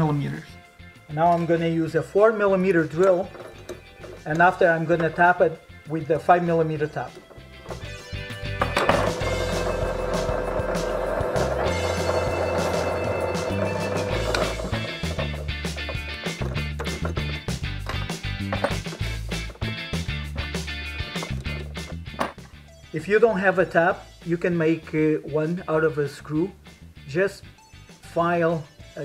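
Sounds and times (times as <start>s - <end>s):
background music: 0.0s - 29.0s
drill press motor running: 8.6s - 17.1s
drill bit drilling a hole: 9.2s - 15.1s.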